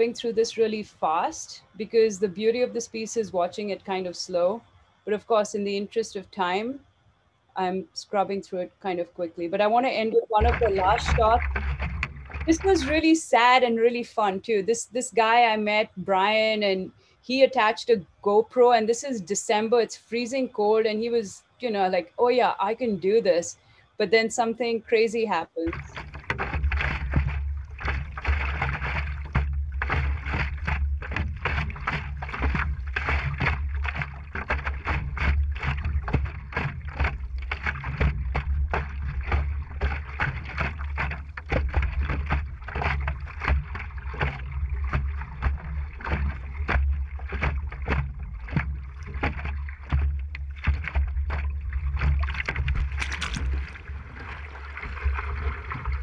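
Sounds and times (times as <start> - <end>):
water splashing around paddleboard: 9.8 - 13.9, 25.6 - 56.0
paddle strokes: 10.0 - 13.6, 25.6 - 56.0
low wind rumble: 10.3 - 13.6, 25.7 - 56.0
sharp splash into water: 25.7 - 56.0.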